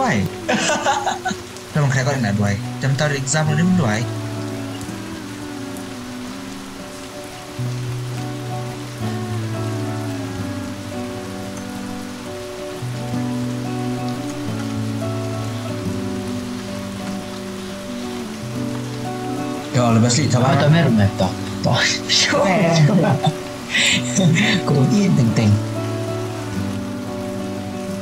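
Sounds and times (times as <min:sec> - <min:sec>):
steady hiss: 0:00.0 - 0:28.0.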